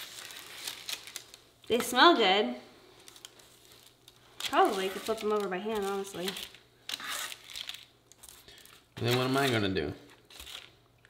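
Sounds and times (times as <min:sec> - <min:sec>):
parchment paper crinkling: 0:00.0 - 0:02.2, 0:02.9 - 0:10.8.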